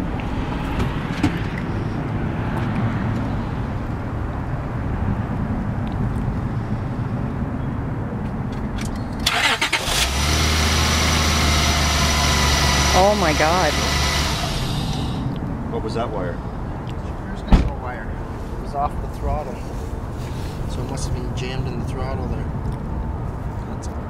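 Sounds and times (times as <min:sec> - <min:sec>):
car engine starting and running: 0:08.8 - 0:15.4.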